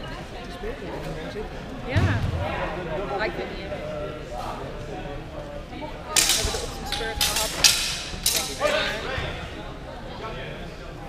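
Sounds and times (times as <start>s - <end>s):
steel swords clashing: 6.2s - 9.0s.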